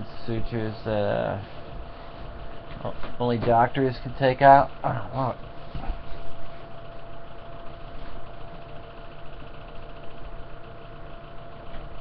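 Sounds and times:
low hum and hiss: 0.0s - 12.0s.

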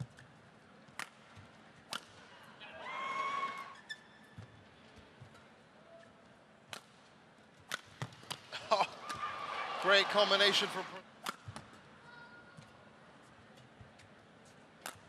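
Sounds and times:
rackets striking shuttlecock: 0.9s - 2.2s, 7.6s - 9.2s, 11.2s - 11.8s.

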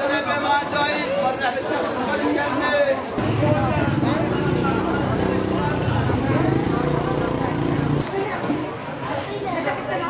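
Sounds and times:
crowd chatter: 0.0s - 10.0s
vehicle engine humming: 3.2s - 8.0s.

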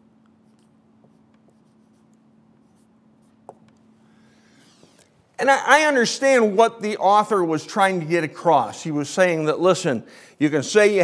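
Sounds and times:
marker writing on whiteboard: 0.2s - 3.8s.

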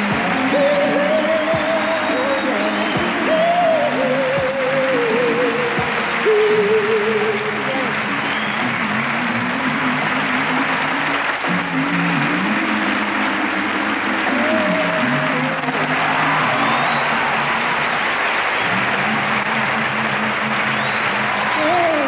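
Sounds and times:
audience applause: 0.0s - 22.0s.

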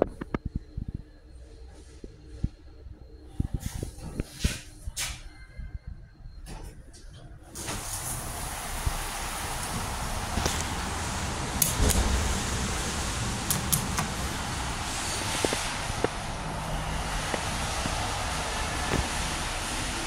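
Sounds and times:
parking garage background noise: 0.0s - 20.0s.

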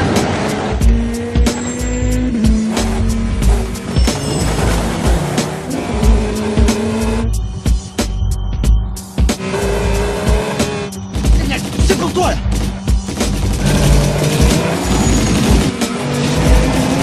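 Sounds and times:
cars speeding past: 0.0s - 7.3s
driving music with steady beat: 0.8s - 14.8s.

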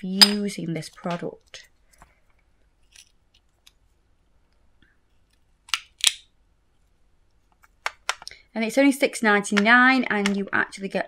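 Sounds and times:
plastic pots clicking together: 9.5s - 10.6s.

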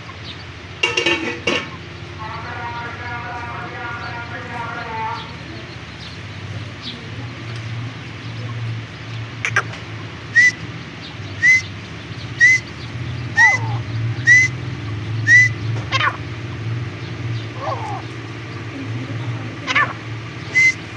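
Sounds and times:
young partridges calling: 0.0s - 20.9s
sharp bird chirps: 9.3s - 20.9s.

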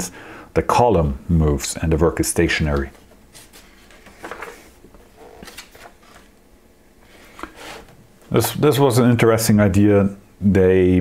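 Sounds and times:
book page turning: 2.8s - 6.4s.

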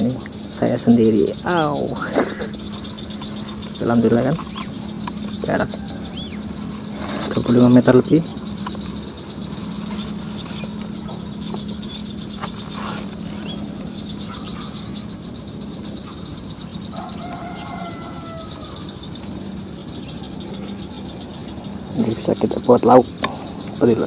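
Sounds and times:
bird call: 0.0s - 24.0s
low steady hum: 0.0s - 24.0s.

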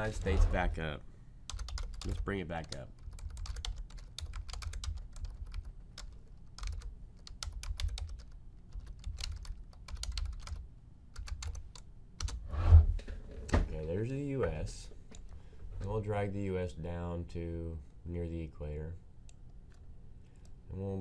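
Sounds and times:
keyboard keys clicking: 1.5s - 10.6s, 11.2s - 12.4s.

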